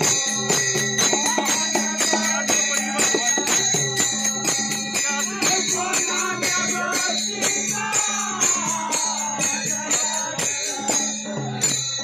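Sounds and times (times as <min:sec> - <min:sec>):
barrel drum beat: 0:00.0 - 0:11.8
hand cymbals ringing: 0:00.0 - 0:12.0
voices singing: 0:00.0 - 0:12.0.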